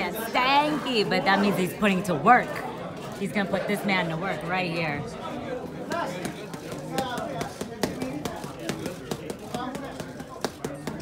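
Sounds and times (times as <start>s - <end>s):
crowd chatter: 0.0s - 11.0s
boxing gloves smacking punch mitts: 5.8s - 11.0s.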